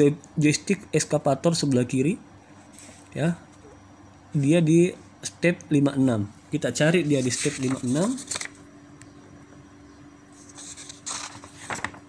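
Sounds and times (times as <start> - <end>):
faint steady hum: 0.0 - 12.0
paper pages rustling: 7.0 - 8.6, 10.3 - 12.0.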